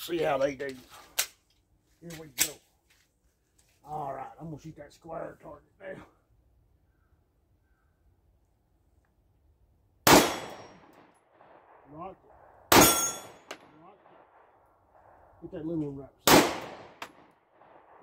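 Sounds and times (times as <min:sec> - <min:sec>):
pistol shots with echo: 0:10.0 - 0:15.2, 0:16.2 - 0:18.0.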